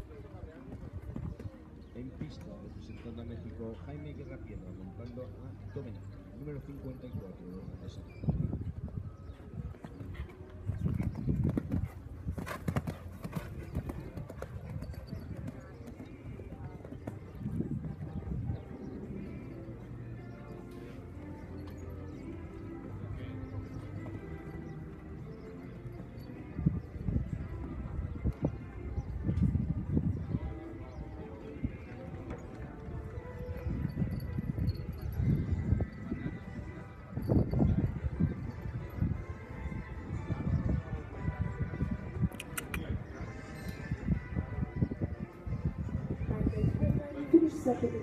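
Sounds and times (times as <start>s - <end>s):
horse hoofbeats on sand: 9.2s - 18.7s.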